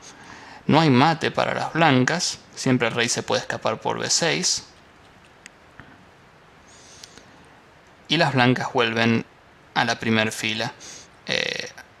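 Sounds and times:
faint room hiss: 0:00.0 - 0:12.0
light click: 0:04.7 - 0:05.6.

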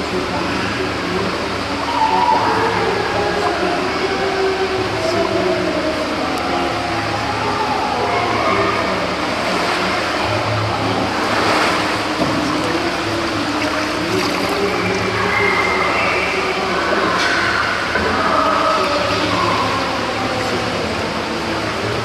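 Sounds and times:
voices singing a slow hymn: 0:00.0 - 0:22.0
water splash: 0:08.3 - 0:22.0.

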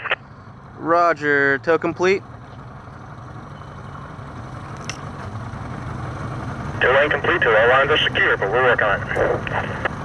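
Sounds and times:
boat engine idling: 0:00.0 - 0:10.0.

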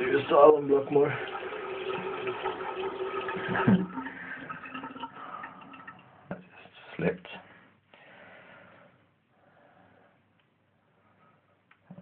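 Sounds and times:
water running from tap into sink: 0:00.0 - 0:06.1.

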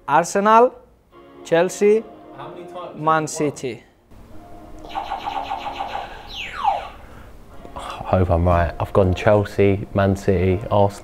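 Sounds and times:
falling pitch sweep: 0:04.3 - 0:07.0
pulsing electronic tone: 0:04.3 - 0:07.0.

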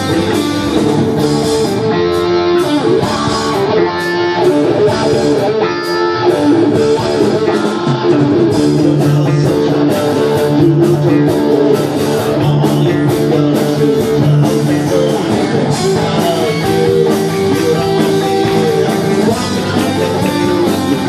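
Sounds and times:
bass guitar: 0:00.0 - 0:21.0
drums: 0:00.0 - 0:21.0
electric guitar lines: 0:00.0 - 0:21.0.

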